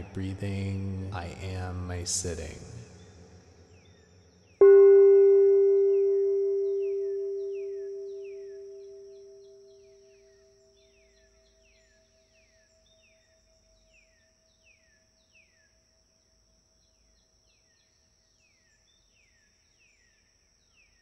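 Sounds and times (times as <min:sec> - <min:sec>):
faint falling chirps: 0:04.6 - 0:10.5
singing bowl ringing: 0:04.6 - 0:10.6.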